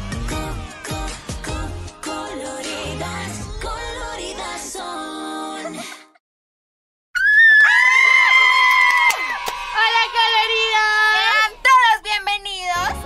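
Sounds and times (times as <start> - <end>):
wavering whoops: 7.2 - 9.6
women screaming excitedly: 7.2 - 11.3.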